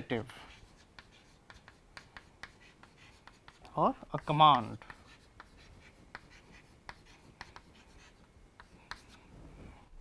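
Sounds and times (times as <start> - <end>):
chalk writing on a blackboard: 0.0 - 9.3.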